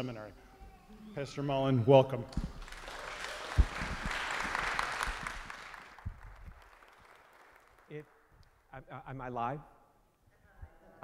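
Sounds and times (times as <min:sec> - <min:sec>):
audience applauding: 0:02.4 - 0:08.1.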